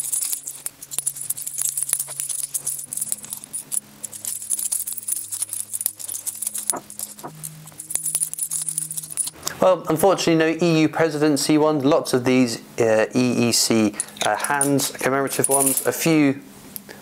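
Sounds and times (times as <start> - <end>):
coins clinking in hand: 0.0 - 9.4, 13.9 - 16.0
faint background music: 0.0 - 16.6.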